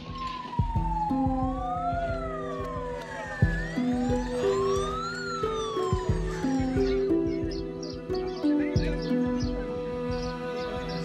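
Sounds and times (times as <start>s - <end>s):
background music with steady beat: 0.0s - 11.0s
emergency siren wailing: 0.0s - 11.0s.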